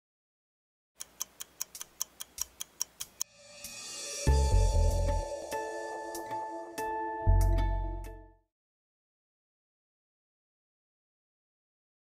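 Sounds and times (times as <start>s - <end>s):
sharp ticking sound effect: 1.0s - 3.3s.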